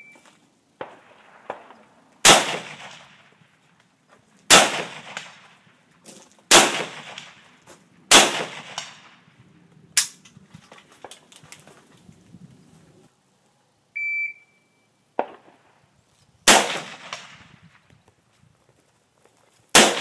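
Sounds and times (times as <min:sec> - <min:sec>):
rifle shots with echo: 0:00.8 - 0:03.5, 0:04.5 - 0:05.8, 0:06.5 - 0:09.4, 0:15.2 - 0:15.7, 0:16.5 - 0:17.7, 0:19.7 - 0:20.0.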